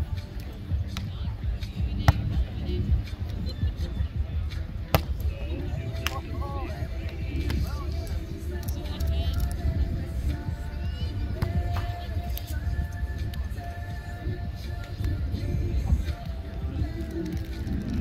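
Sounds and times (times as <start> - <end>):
background music: 0.0 - 18.0
voices: 0.0 - 18.0
volleyball hits: 4.9 - 5.3.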